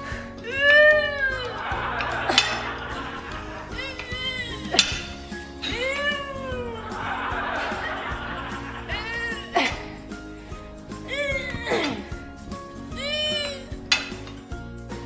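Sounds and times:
background music: 0.0 - 15.0.

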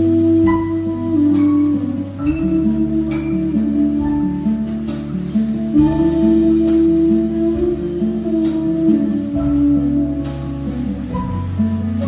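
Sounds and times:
acoustic guitar chords: 0.0 - 12.0
bass line: 0.0 - 12.0.

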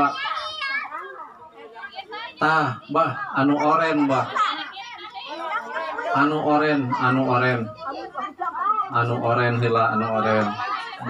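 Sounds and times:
children calling out: 0.0 - 1.6, 3.0 - 7.4.

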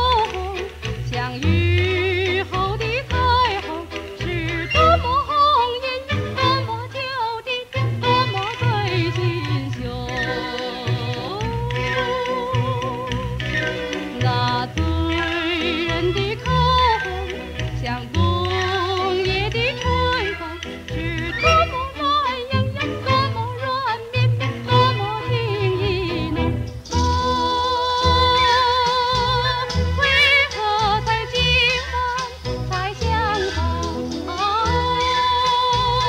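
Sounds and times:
small band accompaniment: 0.0 - 36.0
vintage popular song with vibrato: 0.0 - 36.0.

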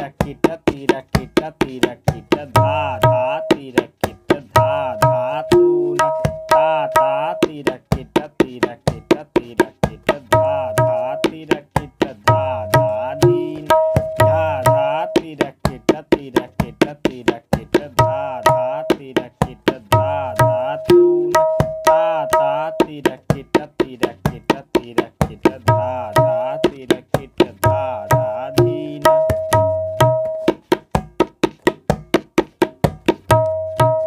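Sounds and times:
tabla damped strokes: 1.6 - 7.8, 9.4 - 15.6, 16.2 - 34.0.

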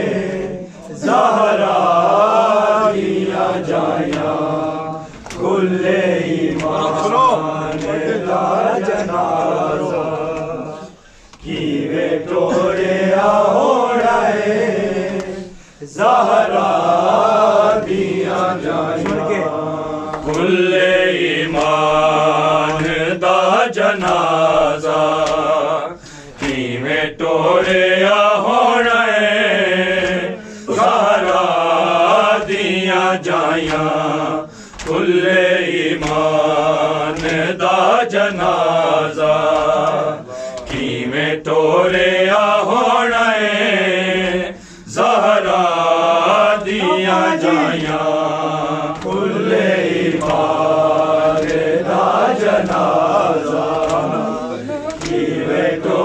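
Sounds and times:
men chanting a mourning lament: 0.0 - 56.0.

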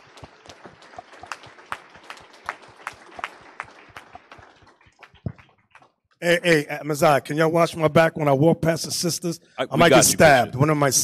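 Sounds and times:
audience applauding: 0.0 - 6.4.

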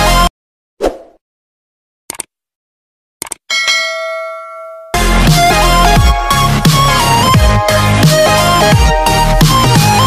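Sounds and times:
bell ding: 3.5 - 5.1.

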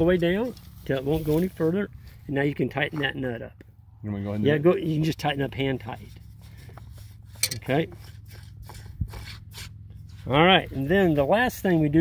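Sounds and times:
plastic nut scraping and ticking: 6.7 - 7.9.

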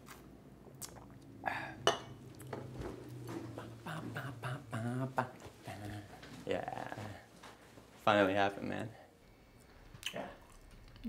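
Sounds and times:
low steady hum: 0.0 - 11.0
man's wordless voice: 3.5 - 7.3.

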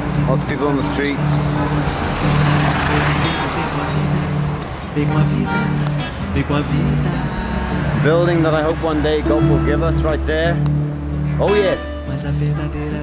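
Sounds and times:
car passing: 0.0 - 11.4
music with sustained notes: 0.0 - 13.0
street traffic: 0.0 - 13.0.

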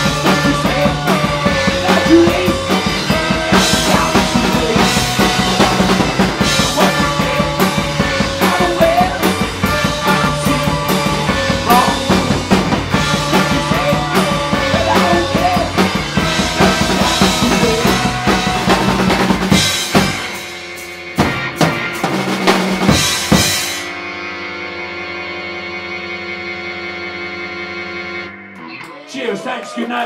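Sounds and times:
drum hits: 0.0 - 9.0
rock band playing live: 0.0 - 30.0.

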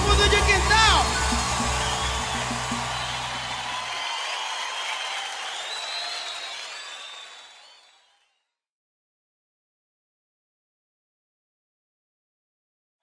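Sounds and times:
samba band playing: 0.0 - 3.8
audience applause: 0.0 - 8.2
audience whistling: 0.0 - 8.2.

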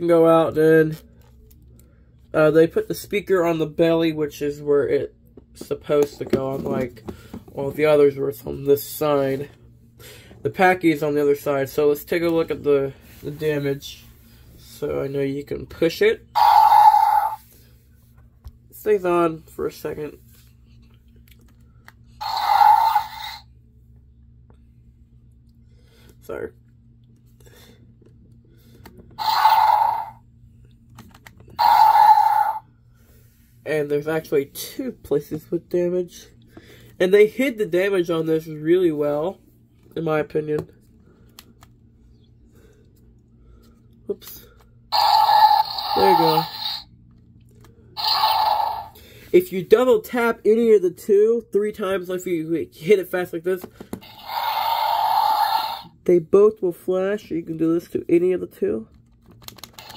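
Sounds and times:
toy dinosaur sound effect: 16.3 - 17.4, 22.2 - 23.4, 29.2 - 30.2, 31.6 - 32.6, 44.9 - 46.9, 48.0 - 49.0, 54.0 - 55.9.

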